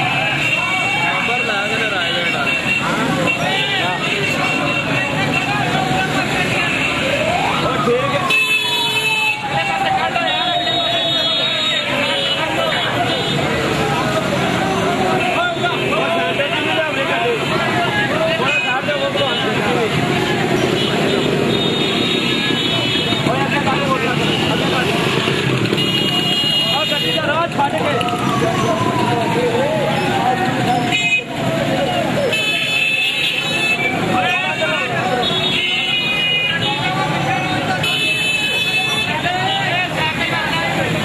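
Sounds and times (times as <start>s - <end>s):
vehicle horns tooting: 0.0s - 7.5s, 8.2s - 13.8s, 20.5s - 27.5s, 30.8s - 31.4s, 32.2s - 40.0s
motorcycles and cars moving slowly: 0.0s - 41.0s.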